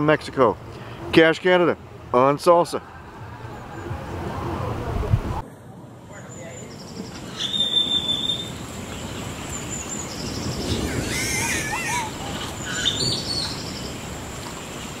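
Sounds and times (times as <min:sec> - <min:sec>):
steady background hiss: 0:04.6 - 0:15.0
birds calling: 0:06.2 - 0:15.0.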